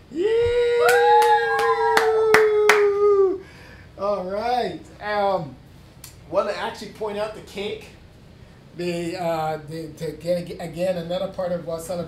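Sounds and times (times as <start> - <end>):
people cheering yeah: 0.1 - 3.4
hands clapping: 0.4 - 3.1.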